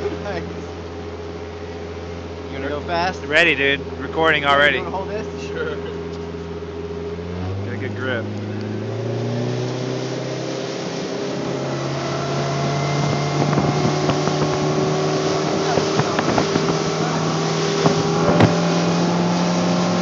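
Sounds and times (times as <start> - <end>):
outboard motor at full throttle: 0.0 - 20.0
wind buffeting microphone: 8.4 - 20.0
hull knocking on waves: 12.6 - 19.2.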